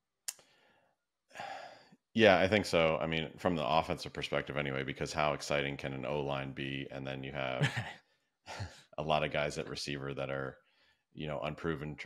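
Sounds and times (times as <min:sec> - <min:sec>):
person breathing in: 0:01.4 - 0:01.9.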